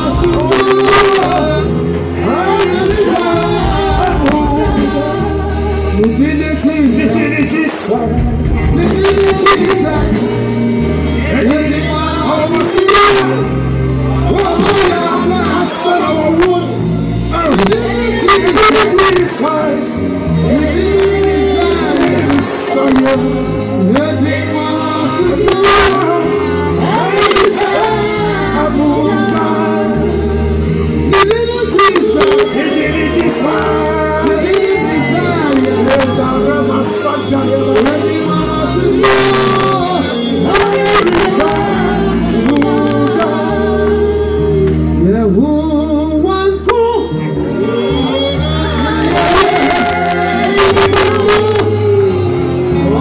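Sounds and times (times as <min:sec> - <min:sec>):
backing singers: 0:00.0 - 0:53.0
sustained bass line: 0:00.0 - 0:53.0.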